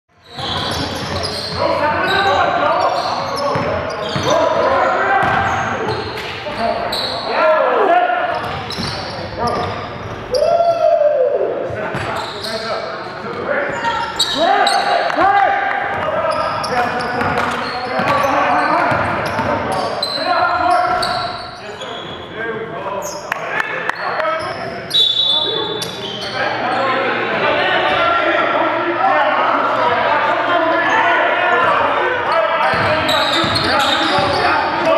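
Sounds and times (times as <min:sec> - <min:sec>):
sneaker squeaks: 0:00.1 - 0:07.3, 0:08.3 - 0:10.5, 0:11.8 - 0:15.2, 0:16.0 - 0:22.4, 0:23.0 - 0:27.0, 0:30.8 - 0:34.9.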